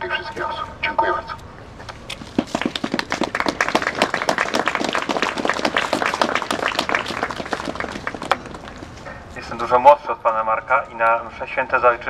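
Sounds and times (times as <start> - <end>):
crowd applauding: 2.3 - 8.9.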